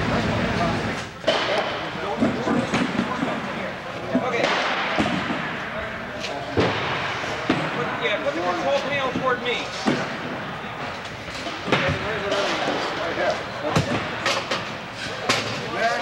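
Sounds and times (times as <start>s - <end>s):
people talking: 0.0s - 14.4s, 15.0s - 16.0s.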